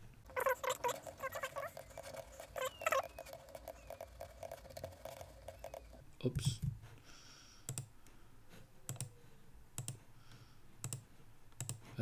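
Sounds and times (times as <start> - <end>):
mouse scroll wheel ticking: 0.3 - 6.0.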